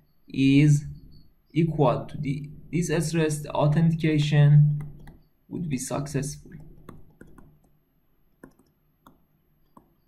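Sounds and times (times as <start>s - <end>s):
stylus tapping on tablet: 4.1s - 5.3s, 6.4s - 7.8s, 8.4s - 10.0s.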